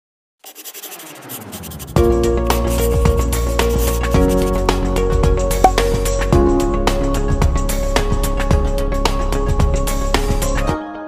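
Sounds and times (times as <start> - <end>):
pencil scratching on paper: 0.4 - 4.7.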